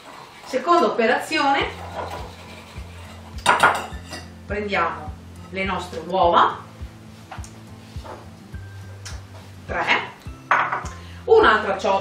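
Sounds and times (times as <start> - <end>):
faint background music: 0.3 - 12.0
ceramic bowl knocking on counter: 10.5 - 10.9.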